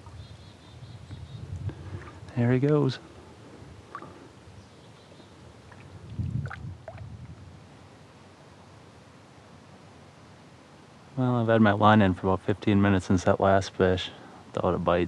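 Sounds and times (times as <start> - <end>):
faint water movement: 1.6 - 4.5, 5.4 - 7.4.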